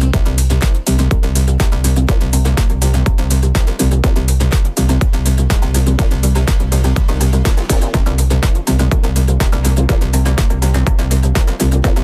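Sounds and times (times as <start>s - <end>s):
electronic dance music: 0.0s - 12.0s.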